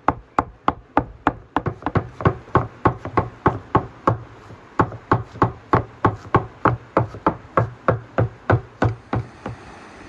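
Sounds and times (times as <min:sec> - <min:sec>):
knife chopping on wooden board: 0:00.4 - 0:04.2, 0:04.8 - 0:09.6.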